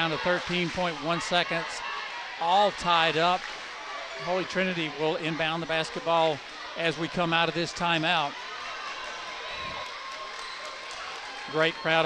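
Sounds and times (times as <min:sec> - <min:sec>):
crowd of voices in a gym: 0:00.0 - 0:12.0.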